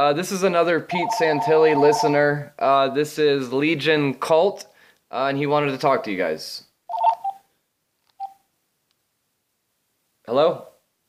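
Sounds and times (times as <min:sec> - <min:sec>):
electronic telephone beeps: 0:00.9 - 0:02.2, 0:06.9 - 0:07.4.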